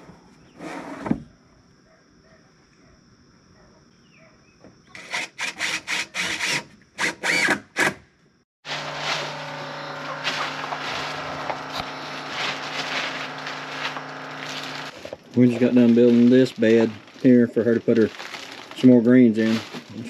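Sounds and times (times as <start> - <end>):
cordless drill running: 5.0 - 7.6, 8.7 - 15.7
faint hum: 8.7 - 18.1
soil pouring from a bag: 8.7 - 20.0.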